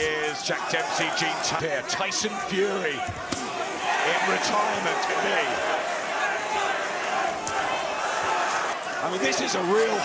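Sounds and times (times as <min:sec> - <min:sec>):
arena crowd hubbub: 0:00.0 - 0:10.0.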